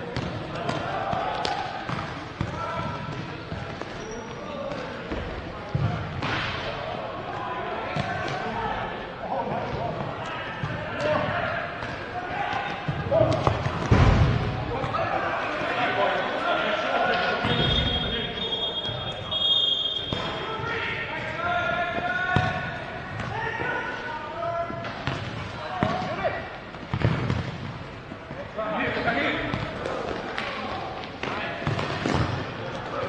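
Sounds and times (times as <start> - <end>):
players calling: 0.0 - 27.2.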